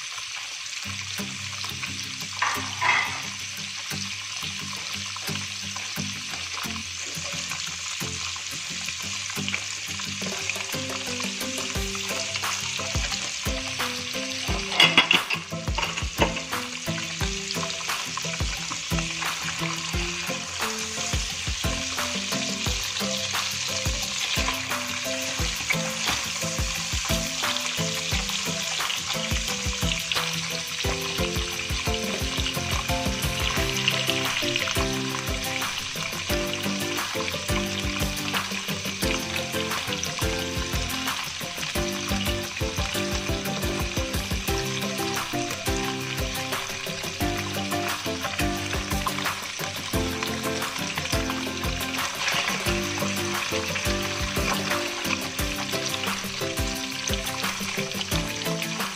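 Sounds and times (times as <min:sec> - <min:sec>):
tofu sizzling in hot oil: 0:00.0 - 0:58.9
spatula scraping a pan: 0:02.4 - 0:03.4, 0:11.6 - 0:16.7.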